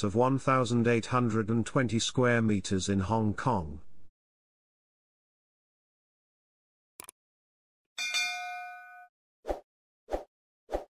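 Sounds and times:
notification bell ding: 0:08.0 - 0:09.1.

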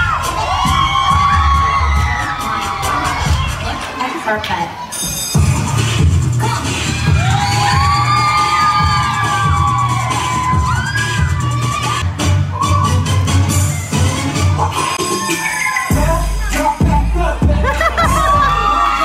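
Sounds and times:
audience cheering: 0:00.0 - 0:04.0, 0:06.6 - 0:14.0, 0:14.7 - 0:16.7, 0:17.6 - 0:19.0
children shouting: 0:00.0 - 0:04.0, 0:06.4 - 0:16.7, 0:17.7 - 0:19.0
upbeat dance music: 0:00.0 - 0:19.0.

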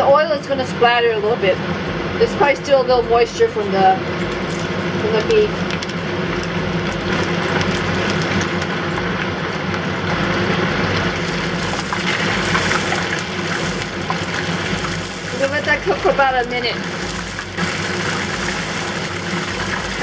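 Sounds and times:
meat deep-frying in oil: 0:03.2 - 0:20.0.

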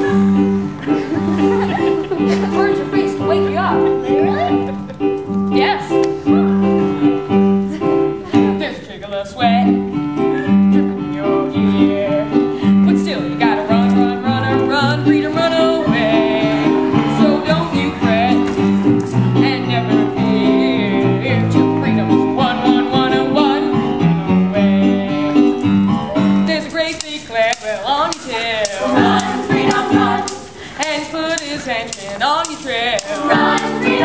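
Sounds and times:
boy singing: 0:10.7 - 0:18.6, 0:19.4 - 0:23.7, 0:26.5 - 0:34.0.

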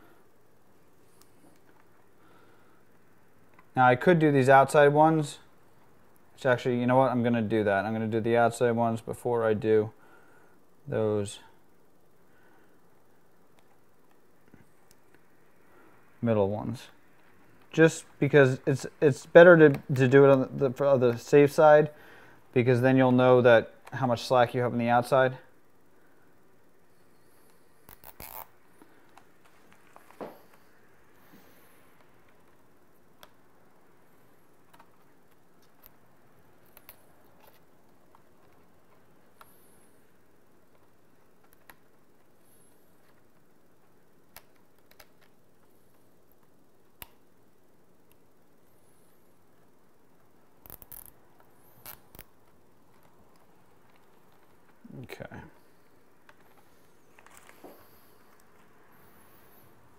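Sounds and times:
low steady hiss: 0:00.0 - 0:59.9
zip ties clicking and rasping: 0:27.8 - 0:28.6, 0:50.6 - 0:52.4.

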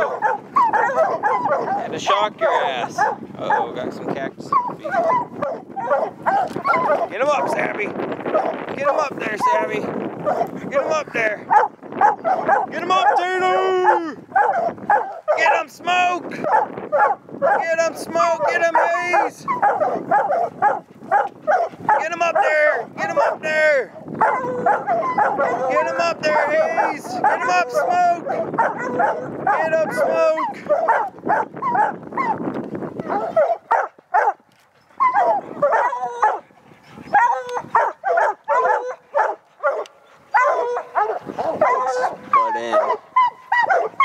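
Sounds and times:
hounds barking: 0:00.0 - 0:44.0.

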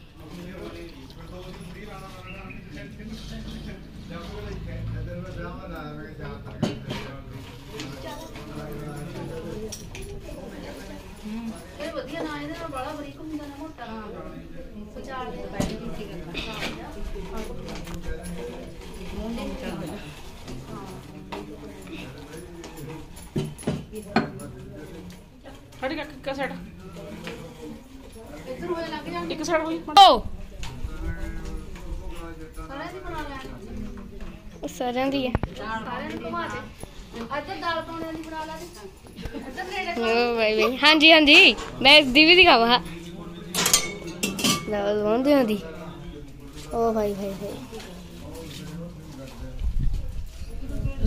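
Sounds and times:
indistinct background voices: 0:00.0 - 0:51.0
people talking in background: 0:00.0 - 0:51.0
kitchen clicks and knocks: 0:43.6 - 0:44.8.

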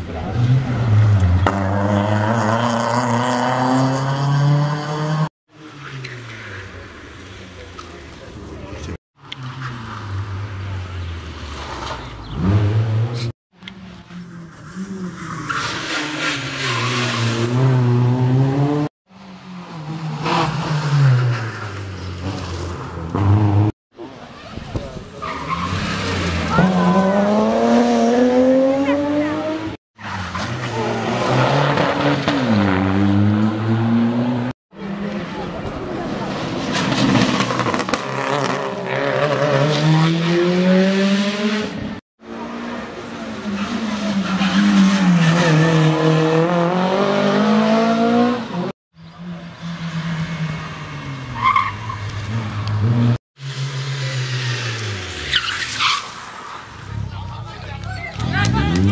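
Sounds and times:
rally car engines revving: 0:00.0 - 0:58.9.

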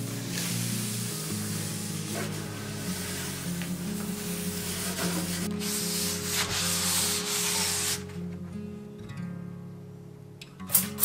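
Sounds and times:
cloth rubbing on wooden shelf: 0:00.0 - 0:08.2
soft guitar music: 0:00.0 - 0:11.0.

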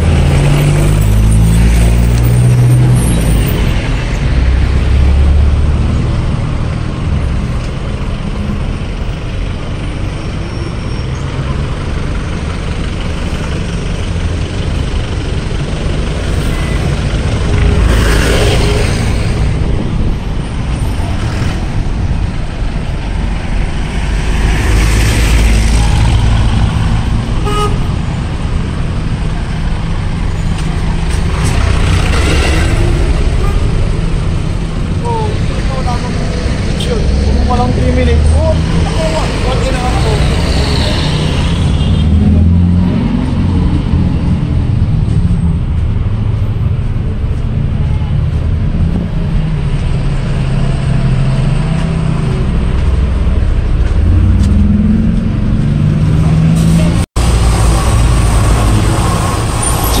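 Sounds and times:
vehicles driving past: 0:00.0 - 1:00.0.

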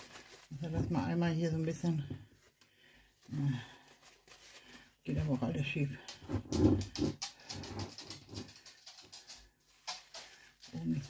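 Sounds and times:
woman speaking: 0:00.5 - 0:02.2, 0:05.1 - 0:06.1.

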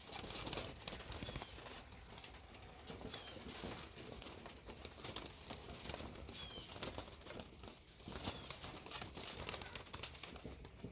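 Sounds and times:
pigeon wings flapping: 0:00.0 - 0:10.9.

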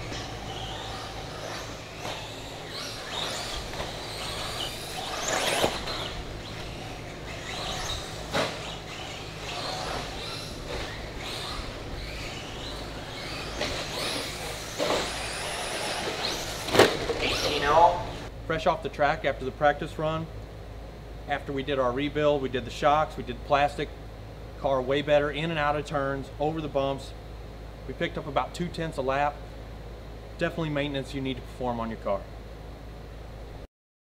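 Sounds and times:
electric rc car motor whine: 0:00.0 - 0:18.3
steady low hum: 0:00.0 - 0:33.7.

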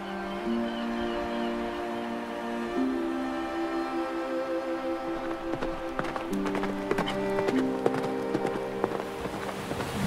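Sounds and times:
orchestral music: 0:00.0 - 0:10.0
galloping horse hoofbeats: 0:05.3 - 0:10.0.

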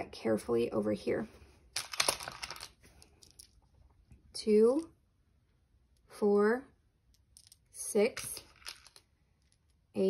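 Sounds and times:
wooden tiles clattering: 0:01.8 - 0:03.8, 0:07.1 - 0:07.6, 0:08.2 - 0:09.8.

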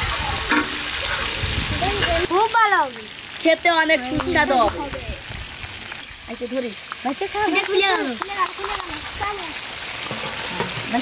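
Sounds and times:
hot oil sizzling in a frying pan: 0:00.0 - 0:11.0.

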